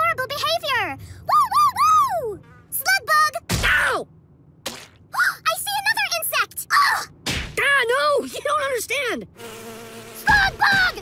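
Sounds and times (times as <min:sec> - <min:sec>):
buzzing hum: 0:09.2 - 0:11.0.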